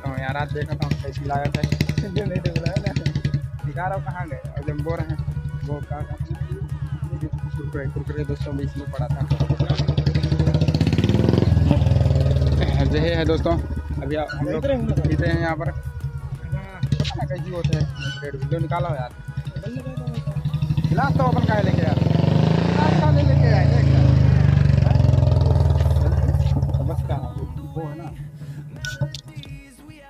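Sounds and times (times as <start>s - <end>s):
people talking: 0.0s - 10.5s, 11.2s - 15.8s, 16.4s - 30.0s
motorcycle engine running: 0.0s - 29.5s.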